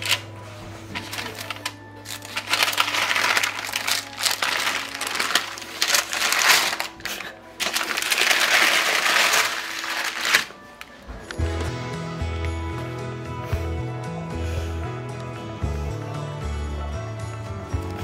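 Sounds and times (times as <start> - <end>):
parchment paper crinkling: 0.0 - 11.2
soft background music: 0.0 - 18.0.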